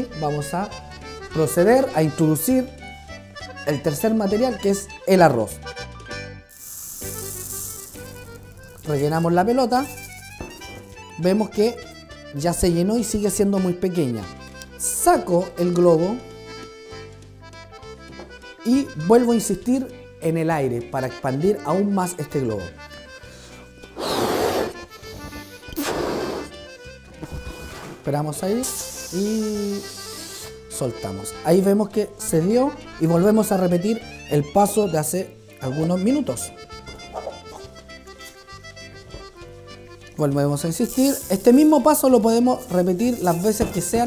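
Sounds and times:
background music: 0.0 - 44.0
breaths blown into balloon: 6.5 - 8.9, 23.2 - 28.0, 28.6 - 30.8, 37.0 - 38.8
rice grains pouring hiss: 6.5 - 9.0, 28.6 - 30.5, 40.9 - 41.4.

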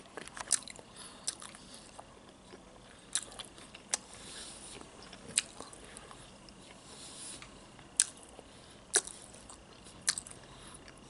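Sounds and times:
chewing sandwich: 0.0 - 11.0.

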